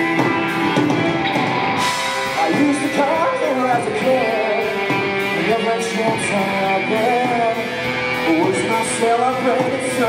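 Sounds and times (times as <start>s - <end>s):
bass guitar: 0.0s - 10.0s
drums with cymbals: 0.0s - 10.0s
electric guitar: 0.0s - 10.0s
man singing lead vocal: 2.2s - 10.0s.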